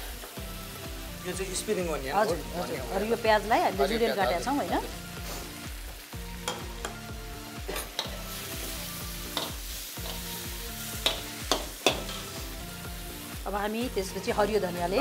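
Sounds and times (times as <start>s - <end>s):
chicken sizzling in a wok: 0.0s - 15.0s
spatula scraping a wok: 10.9s - 12.4s.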